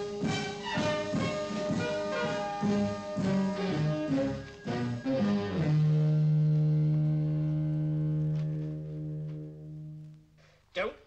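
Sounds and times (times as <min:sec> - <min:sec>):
brassy jazz music: 0:00.0 - 0:10.4.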